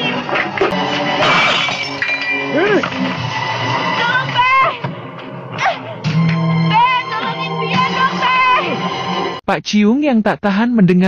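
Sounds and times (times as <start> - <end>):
background music: 0.0 - 9.5
crash of something breaking: 1.2 - 2.0.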